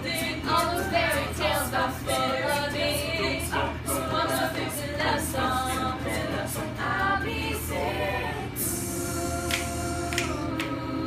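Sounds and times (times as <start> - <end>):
choir singing a cappella: 0.0 - 11.0.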